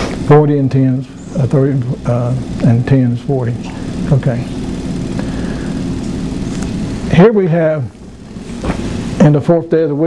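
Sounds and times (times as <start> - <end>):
background hiss: 0.0 - 10.0
steady low hum: 0.0 - 10.0.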